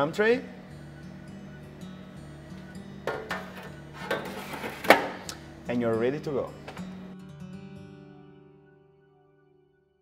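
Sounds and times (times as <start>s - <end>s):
background music: 0.0s - 10.0s
metal tray knocking: 3.1s - 5.2s.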